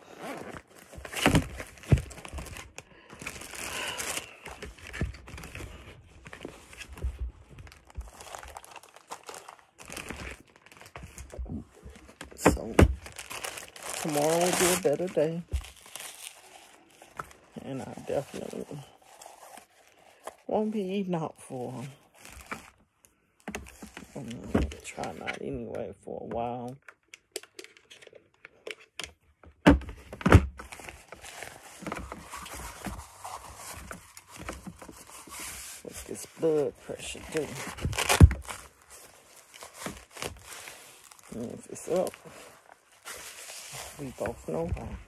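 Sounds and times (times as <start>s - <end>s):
cuff strap rustling and scraping: 0.0s - 20.6s, 30.6s - 45.0s
soft handling noise: 30.6s - 45.0s.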